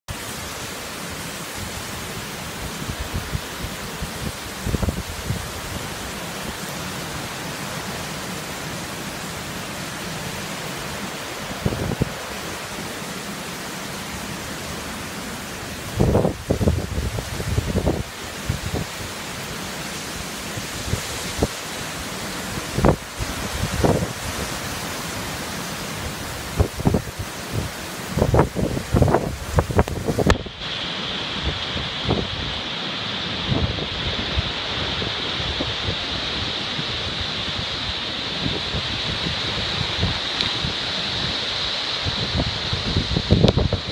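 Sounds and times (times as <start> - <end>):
heavy rain pouring: 0.1 - 43.9
wind gusts buffeting microphone: 0.7 - 6.6, 11.1 - 12.7, 15.7 - 19.3, 20.0 - 32.7, 33.3 - 43.9.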